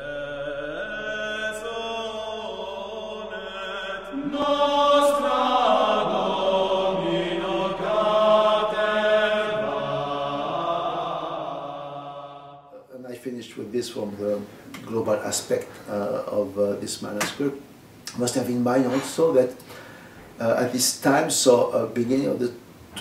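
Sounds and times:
vocal ensemble chanting: 0.0 - 13.0.

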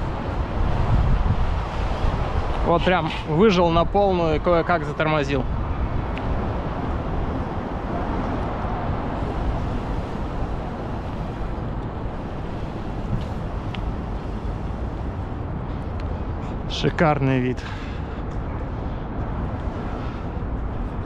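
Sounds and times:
wind rush on microphone: 0.0 - 21.0.

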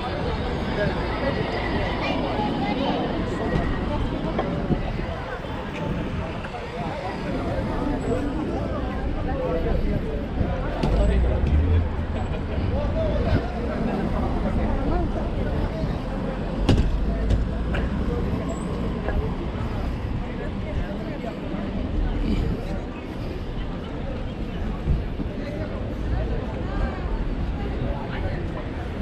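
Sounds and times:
passersby talking: 0.0 - 29.0
passing vehicles rumbling: 0.0 - 29.0
road traffic: 0.0 - 29.0.

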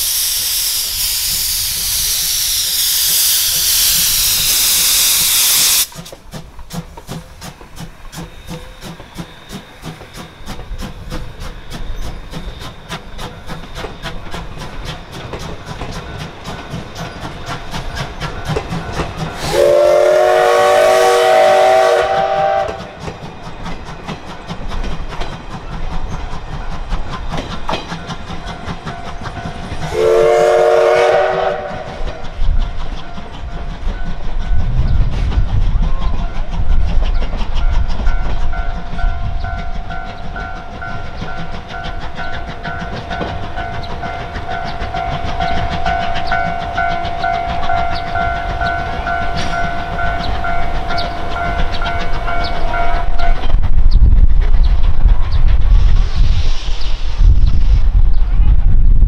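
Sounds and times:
steam locomotive whistle: 0.0 - 6.0, 19.2 - 23.2, 29.8 - 32.4, 43.7 - 53.4
steam exhaust chuffs: 0.0 - 59.0
wheels clicking over rail joints: 5.7 - 19.6, 22.2 - 29.9, 31.4 - 55.7.

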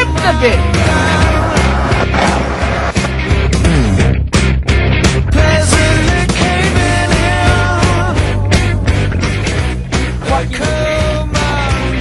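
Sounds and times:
rock music: 0.0 - 12.0.

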